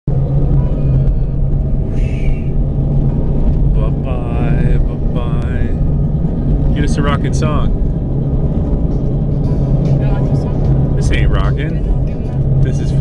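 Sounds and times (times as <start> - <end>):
steady low rumble: 0.1 - 13.0.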